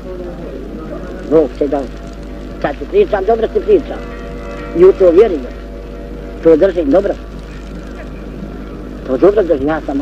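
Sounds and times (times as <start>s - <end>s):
film soundtrack hum and hiss: 0.0s - 10.0s.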